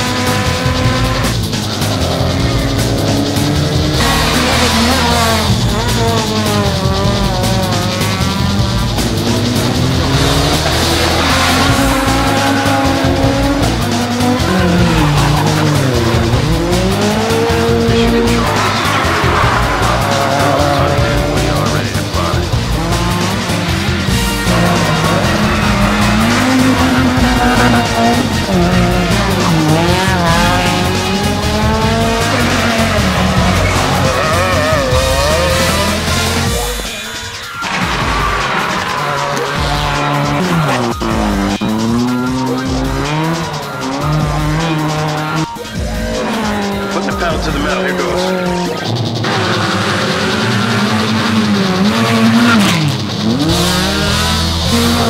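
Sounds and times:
background music: 0:00.0 - 0:55.0
rally car engines revving: 0:00.0 - 0:55.0.

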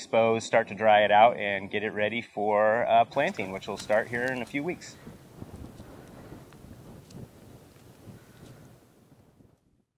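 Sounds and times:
low wind rumble on microphone: 0:03.0 - 0:09.9
faint crackles: 0:03.1 - 0:09.6.

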